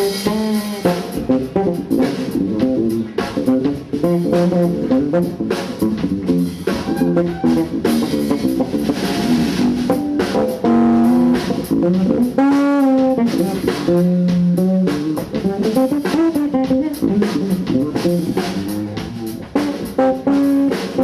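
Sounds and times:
drum kit and cymbals: 0.0s - 21.0s
electric bass guitar: 0.0s - 21.0s.

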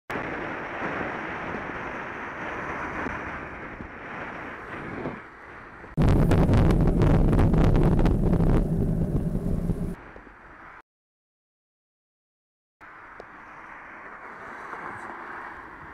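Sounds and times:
wind rushing over microphone: 0.1s - 10.3s
deep buffeting wind rumble: 0.1s - 10.4s
bicycle road noise: 0.2s - 10.8s, 12.8s - 15.9s.

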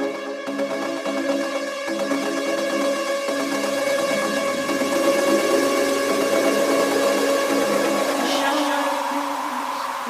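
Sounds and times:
synth pad chords: 0.0s - 10.0s.

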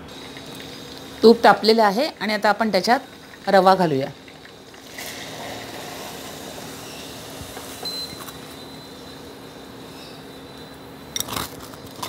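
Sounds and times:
cooktop hum: 0.0s - 12.0s
hot oil sizzling: 0.0s - 12.0s.

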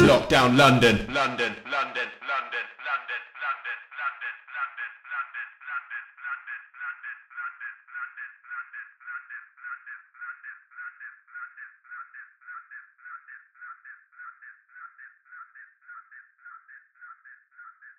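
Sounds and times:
looped telephone-filtered vocal sample: 0.0s - 17.9s.

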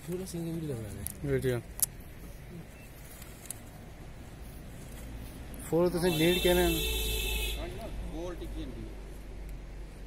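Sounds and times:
open-air gathering background noise: 0.0s - 10.0s.

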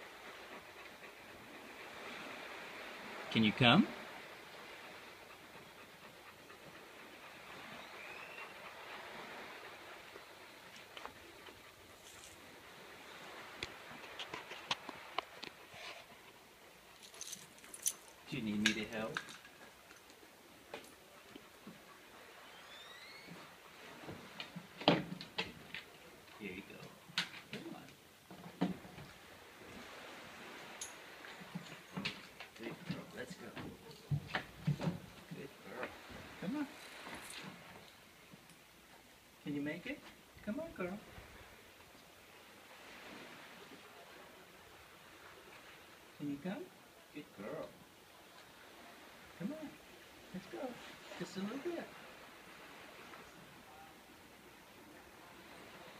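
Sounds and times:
steady background hiss: 0.0s - 55.9s.

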